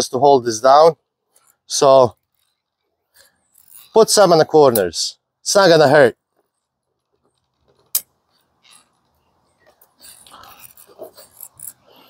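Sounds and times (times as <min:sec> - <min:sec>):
caulking gun clicks and rustling: 0:06.3 - 0:12.0.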